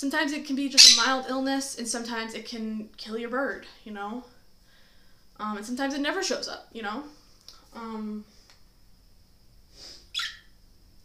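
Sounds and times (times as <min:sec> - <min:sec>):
parrot chirp: 0:00.8 - 0:01.2, 0:10.1 - 0:10.6.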